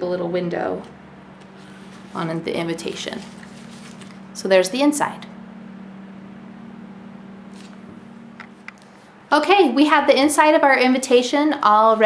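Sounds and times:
low electrical hum: 0.0 - 12.0
card rustling: 1.4 - 4.3, 7.5 - 8.9.

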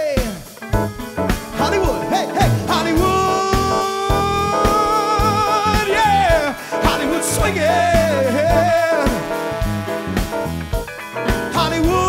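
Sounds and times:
live funk band playing: 0.0 - 12.0
drum hits: 0.2 - 12.0.

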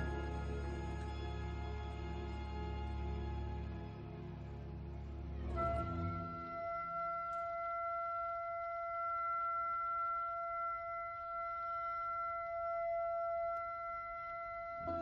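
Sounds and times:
instrument holding long high note: 0.0 - 3.7, 5.4 - 15.0
orchestra playing low notes: 0.0 - 8.8.

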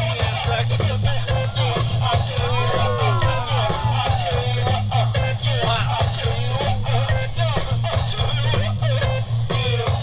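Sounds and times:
heavy repeating bass line: 0.0 - 9.5
guitar: 0.0 - 9.9
drum beat with cymbals: 0.0 - 10.0.

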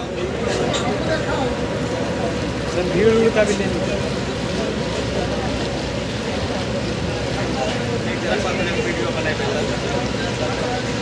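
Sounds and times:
ferry engine rumbling: 0.0 - 11.0.

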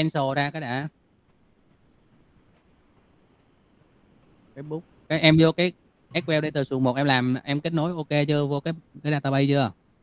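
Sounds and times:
man speaking: 0.0 - 1.0, 4.6 - 9.8
background hiss and hum: 0.0 - 10.0.

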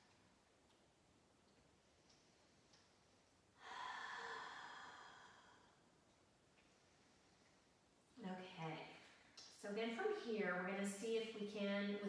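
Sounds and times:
person exhaling: 3.6 - 5.8.

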